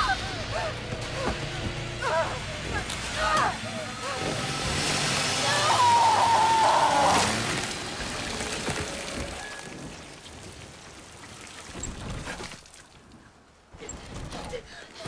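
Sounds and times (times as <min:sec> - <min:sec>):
rain pouring: 0:00.0 - 0:13.7.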